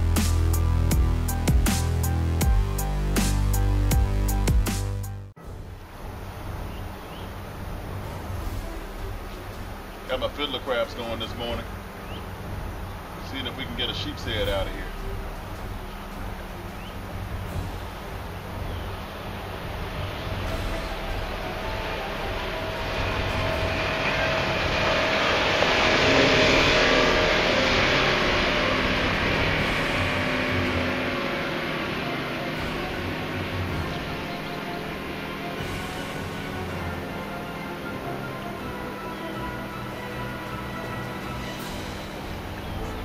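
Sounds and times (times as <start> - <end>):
motorboat passing: 5.4 - 43.0.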